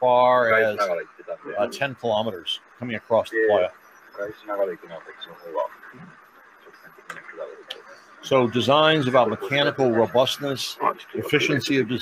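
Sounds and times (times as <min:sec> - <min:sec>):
steady hiss: 0:00.0 - 0:12.0
thin voices talking: 0:00.0 - 0:12.0.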